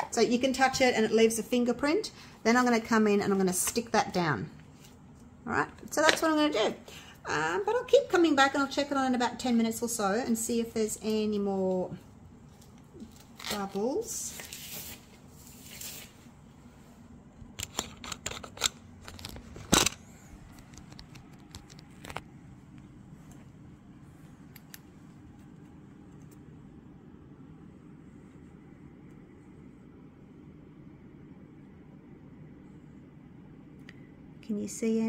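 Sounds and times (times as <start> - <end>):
faint low hum: 0.0 - 35.0.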